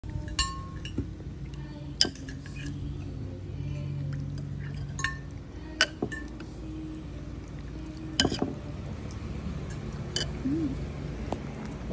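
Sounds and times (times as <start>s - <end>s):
steady low hum: 0.0s - 11.9s
metal ladle clinking on ceramic bowl: 0.2s - 1.0s, 2.0s - 2.8s, 4.7s - 6.4s, 8.2s - 8.6s.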